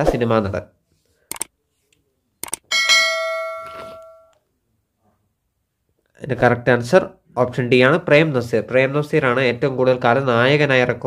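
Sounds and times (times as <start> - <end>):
bell chime: 2.7 - 4.4.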